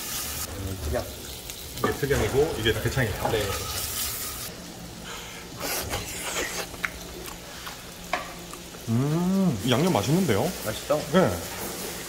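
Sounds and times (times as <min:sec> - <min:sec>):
meat sizzling in a frying pan: 0:00.0 - 0:12.0.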